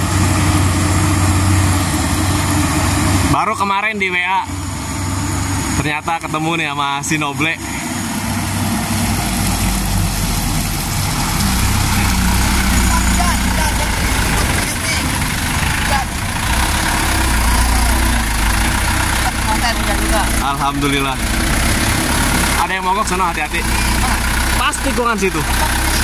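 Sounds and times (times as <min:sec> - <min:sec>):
truck diesel engine running: 0:00.0 - 0:26.0.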